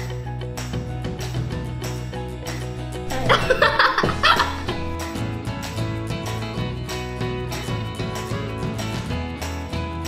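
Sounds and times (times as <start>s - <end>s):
light background music: 0.0s - 10.0s
child laughing: 3.1s - 5.0s.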